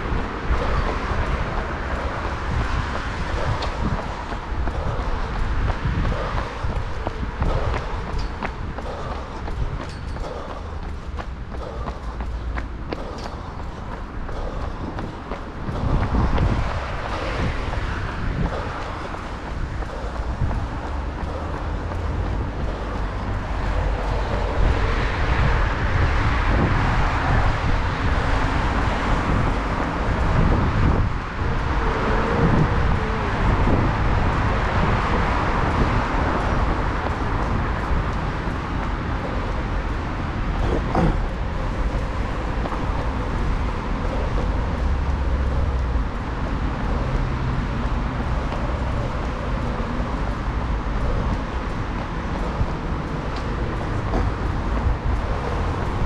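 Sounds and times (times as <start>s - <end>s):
road traffic: 0.0s - 56.0s
running footsteps on pavement: 0.0s - 56.0s.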